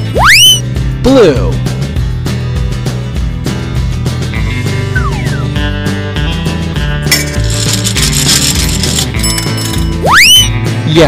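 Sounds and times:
background music: 0:00.0 - 0:11.0
coin rattling in gumball machine: 0:07.1 - 0:10.0.

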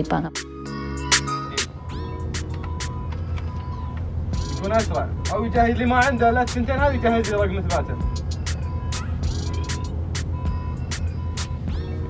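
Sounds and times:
bus engine idling: 0:00.7 - 0:12.0.

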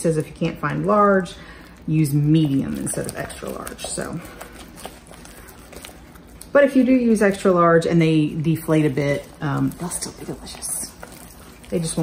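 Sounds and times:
wooden spoon beating dough: 0:01.9 - 0:12.0.

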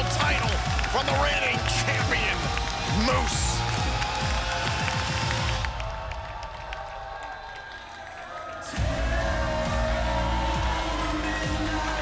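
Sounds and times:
entrance music: 0:00.0 - 0:06.5, 0:08.0 - 0:12.0
arena crowd cheering: 0:00.0 - 0:12.0.

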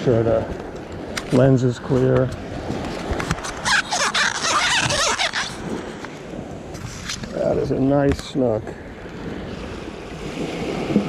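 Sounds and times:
lens being wiped squeaking: 0:03.4 - 0:05.6.

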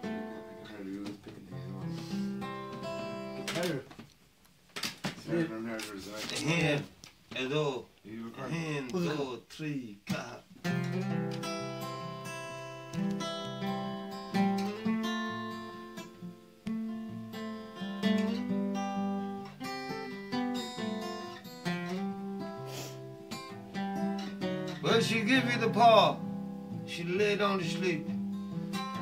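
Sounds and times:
acoustic guitar strumming chords: 0:00.0 - 0:03.8, 0:10.1 - 0:29.0.

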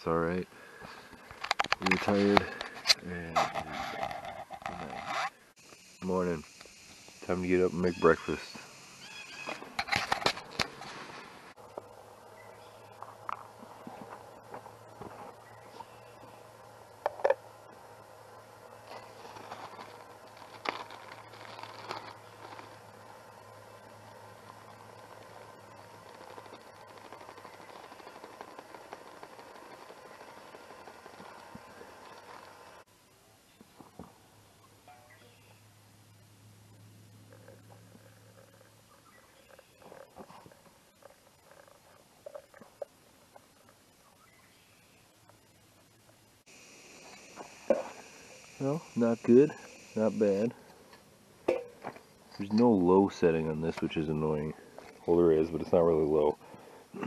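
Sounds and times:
steady faint hiss: 0:05.0 - 0:57.0
food pouch rustling: 0:19.0 - 0:23.0.

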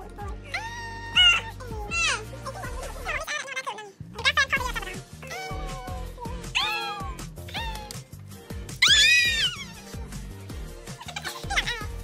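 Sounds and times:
background music: 0:00.0 - 0:12.0
meow-like calls: 0:06.6 - 0:08.0, 0:08.8 - 0:09.9.

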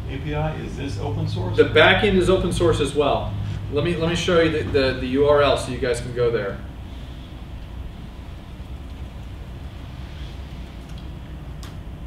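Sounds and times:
low room rumble and hiss: 0:00.0 - 0:12.0.

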